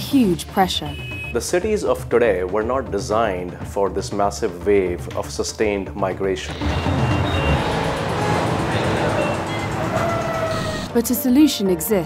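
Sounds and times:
background music: 0.0s - 12.0s
short car horn beeps: 0.8s - 1.4s, 6.5s - 10.9s
traffic engines and road noise: 6.5s - 11.4s.

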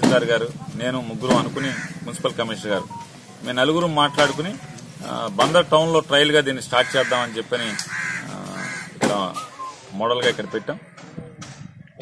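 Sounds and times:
crow cawing: 1.5s - 2.1s, 6.8s - 9.0s
murmur of voices: 6.8s - 12.0s.

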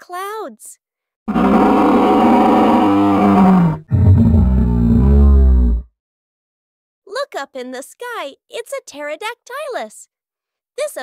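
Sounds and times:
dinosaur roar: 1.3s - 5.9s.

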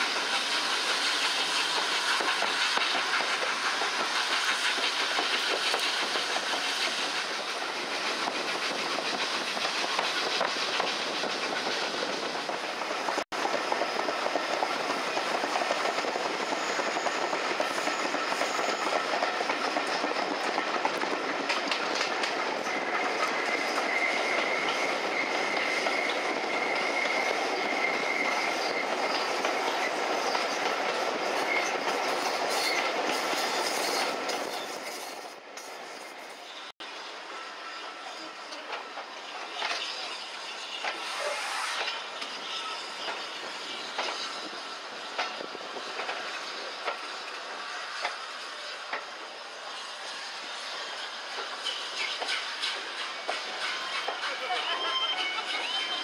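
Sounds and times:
train wheel clatter: 0.0s - 36.4s, 38.1s - 56.0s
thin wheel squeal: 15.7s - 20.5s, 22.6s - 44.8s, 46.2s - 56.0s.

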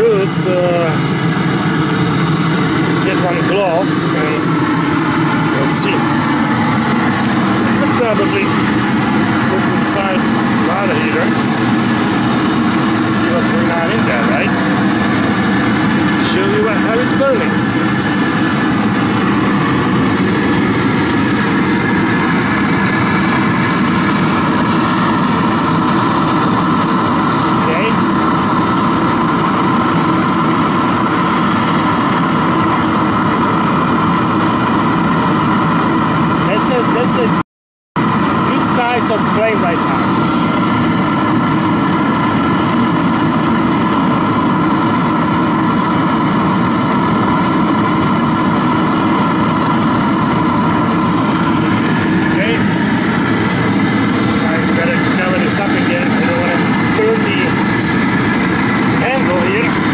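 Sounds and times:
burner rushing: 0.0s - 37.3s, 38.0s - 59.9s
constant hum: 0.0s - 37.4s, 38.0s - 59.9s.

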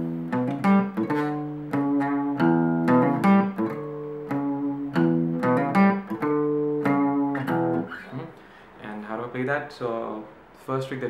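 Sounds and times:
acoustic guitar picked riff: 0.0s - 8.6s.

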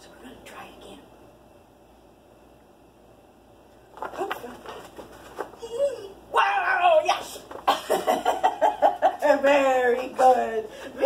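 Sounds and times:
woman making wordless praise sounds: 5.6s - 7.5s.

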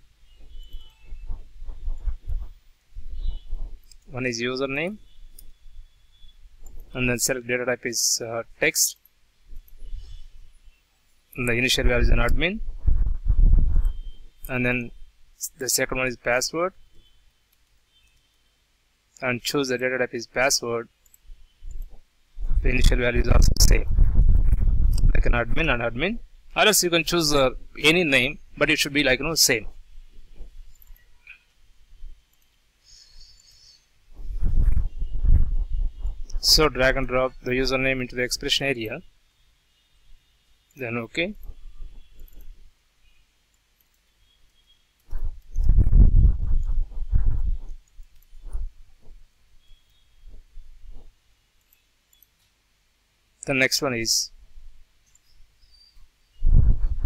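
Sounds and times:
faint high-pitched chirping: 0.0s - 7.4s, 8.8s - 18.7s, 20.4s - 23.8s, 26.7s - 52.6s, 55.0s - 57.0s.

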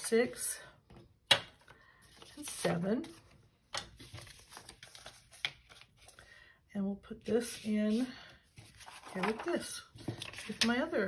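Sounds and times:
banknotes rustling and crinkling: 1.5s - 6.5s, 7.3s - 11.0s.

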